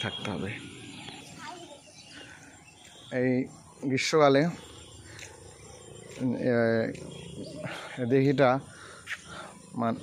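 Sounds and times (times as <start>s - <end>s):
outdoor background noise: 0.0s - 10.0s.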